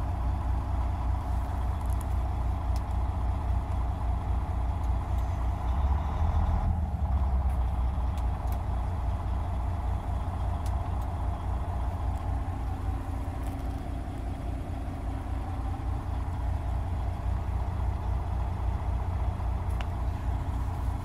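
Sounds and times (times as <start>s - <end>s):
truck diesel engine idling: 0.0s - 21.0s.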